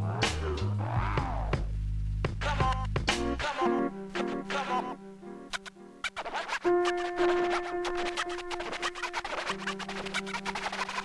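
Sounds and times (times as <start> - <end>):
drums: 0.0 - 3.6
bass line: 0.0 - 4.0
hip-hop instrumental: 0.0 - 11.0
turntable scratching: 0.0 - 11.0.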